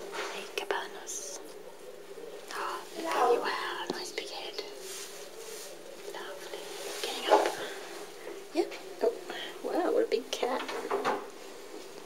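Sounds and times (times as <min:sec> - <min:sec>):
person whispering: 0:00.1 - 0:01.4, 0:02.5 - 0:04.8.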